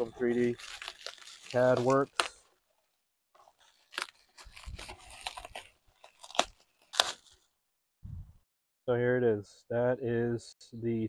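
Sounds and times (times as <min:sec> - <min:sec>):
bubble wrap crinkling: 0:00.0 - 0:07.6.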